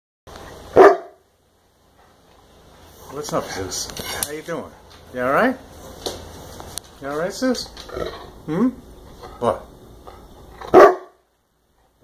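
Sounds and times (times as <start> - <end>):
dog barking: 0.7 - 1.2, 10.7 - 11.2.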